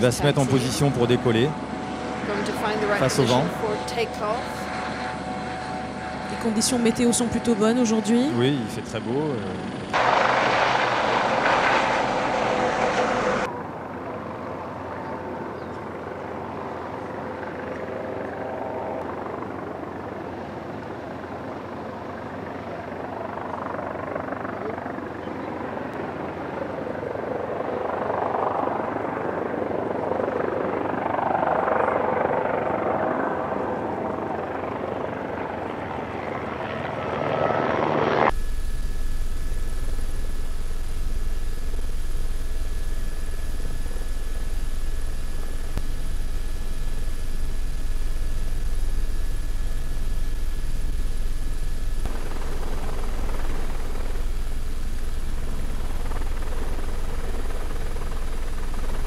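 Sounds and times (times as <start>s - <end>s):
aircraft in flight rumble: 0.0s - 59.0s
electric fans whining: 38.3s - 59.0s.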